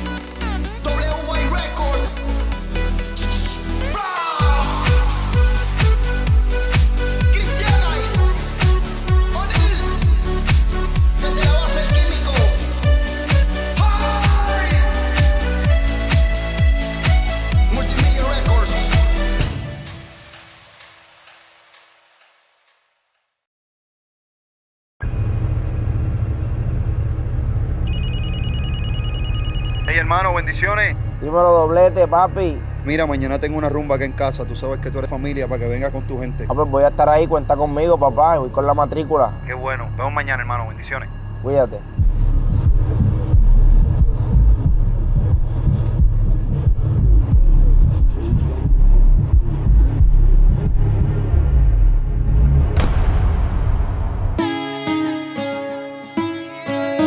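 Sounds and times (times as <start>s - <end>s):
low rumble: 25.0s - 54.4s
telephone ringing: 27.9s - 30.6s
deep uneven rumble: 41.2s - 54.4s.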